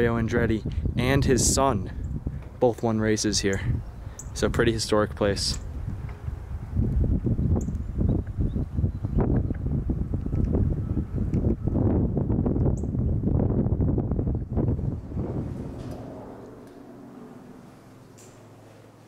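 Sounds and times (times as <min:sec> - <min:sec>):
wind buffeting microphone: 0:00.0 - 0:18.7.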